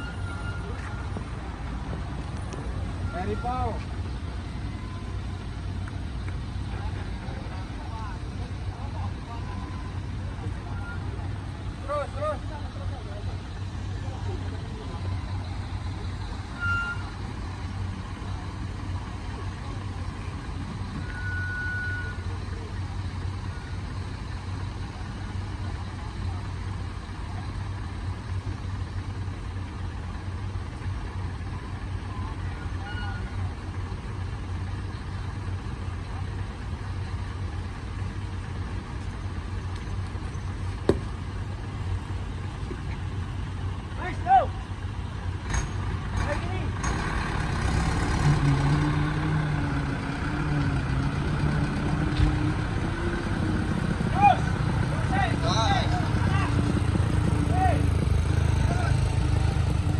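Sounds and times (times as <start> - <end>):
second engine: 0.0 - 59.9
truck engine idling: 0.0 - 59.9.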